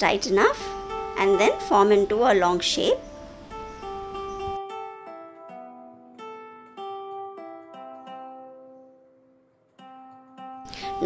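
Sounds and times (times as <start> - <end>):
plucked string melody: 0.0 - 11.0.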